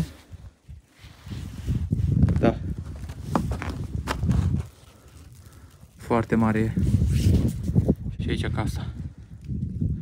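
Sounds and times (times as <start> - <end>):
footsteps on snowy wooden deck: 2.8 - 4.8.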